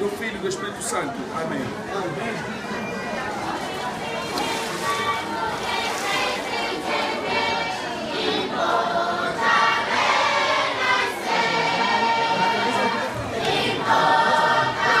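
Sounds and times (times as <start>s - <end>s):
congregation singing a hymn: 4.1s - 15.0s.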